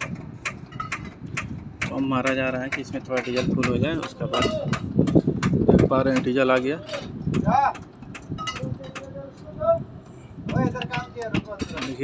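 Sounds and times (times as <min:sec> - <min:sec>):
light clicks and knocks: 0:00.0 - 0:09.5, 0:10.5 - 0:12.0.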